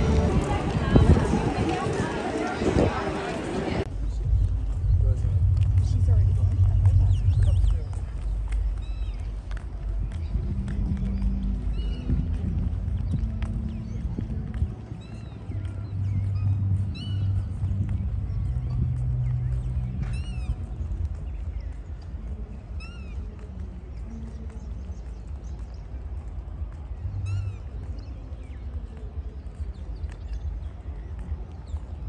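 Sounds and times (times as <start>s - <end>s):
footsteps on paving: 0.0s - 32.0s
low rumble: 3.8s - 24.2s.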